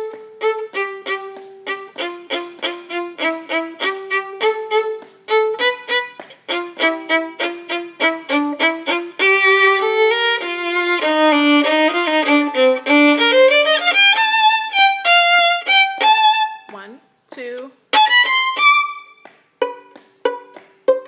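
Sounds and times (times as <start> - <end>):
solo violin bowed: 0.0 - 16.8, 17.9 - 21.0.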